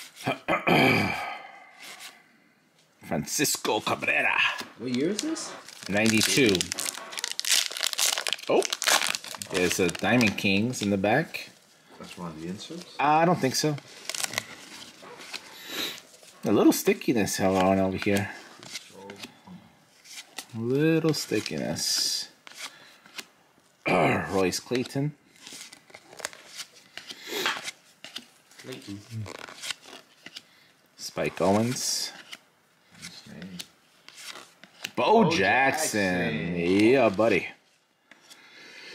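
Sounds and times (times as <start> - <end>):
card pack wrapper crinkling: 4.0 - 16.3, 24.7 - 30.4, 33.4 - 37.4.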